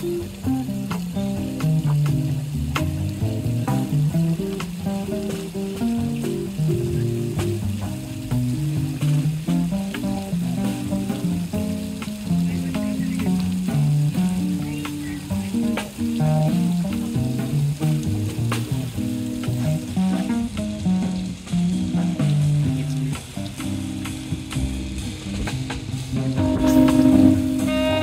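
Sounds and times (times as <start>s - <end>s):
drum kit: 0.0s - 28.0s
electric guitar lines: 0.0s - 28.0s
steady hiss: 0.0s - 28.0s
walking upright bass: 0.0s - 28.0s.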